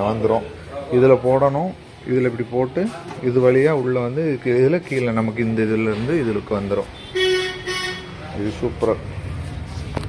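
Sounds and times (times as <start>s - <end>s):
horn tooting: 7.0s - 8.3s
man speaking: 8.0s - 9.2s.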